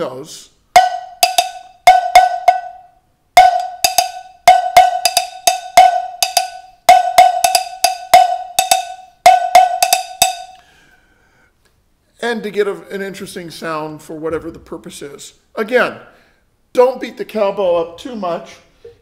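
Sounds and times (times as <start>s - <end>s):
cowbell struck with drumstick: 0.8s - 10.6s.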